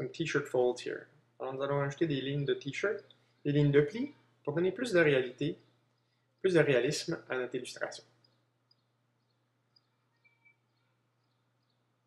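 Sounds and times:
faint low hum: 0.0s - 12.0s.

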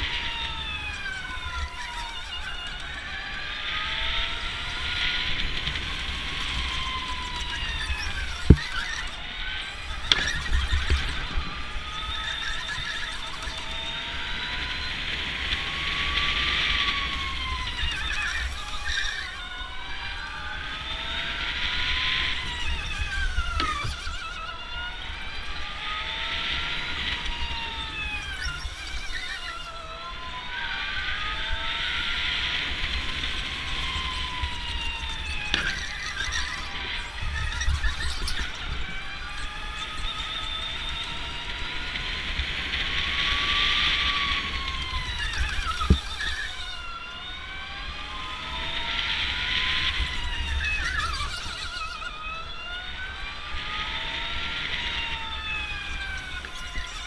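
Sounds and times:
electric go-kart motors whining: 0.0s - 57.0s.

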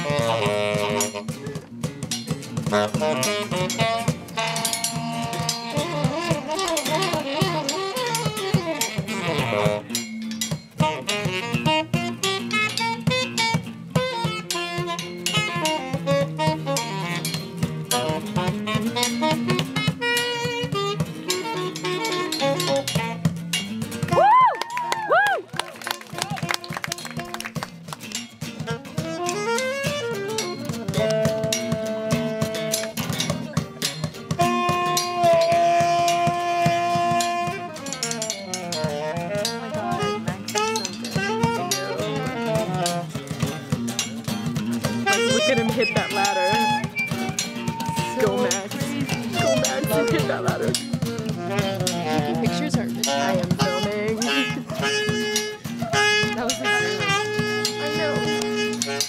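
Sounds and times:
saxophones playing: 0.0s - 1.7s, 2.6s - 23.6s, 28.5s - 59.0s
guitars strummed: 0.0s - 24.5s, 25.8s - 59.0s.

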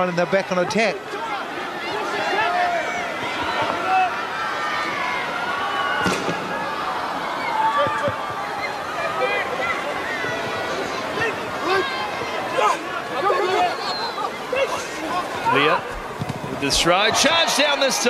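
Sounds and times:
voices calling out: 1.0s - 18.0s.

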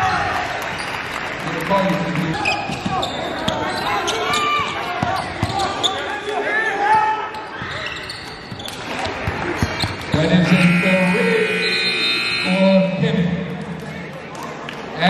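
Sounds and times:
sneakers squeaking on floor: 2.4s - 6.2s, 7.3s - 10.9s
people calling out: 10.4s - 13.2s.

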